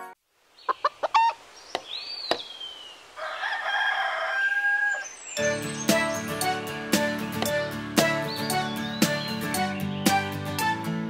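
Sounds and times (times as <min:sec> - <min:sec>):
chicken clucking: 0:00.7 - 0:01.4
rooster crowing: 0:03.2 - 0:05.1
cheerful children's music: 0:05.4 - 0:11.0.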